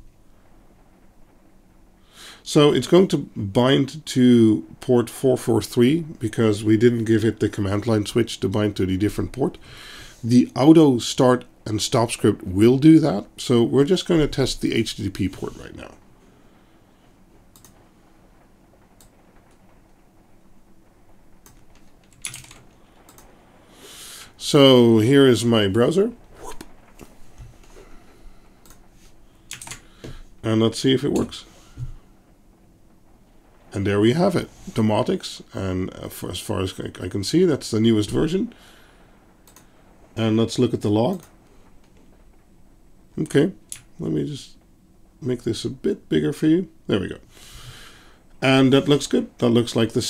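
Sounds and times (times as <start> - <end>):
low steady hum: 0.0 - 50.0
keyboard and mouse clicks: 17.6 - 17.8, 29.5 - 29.8.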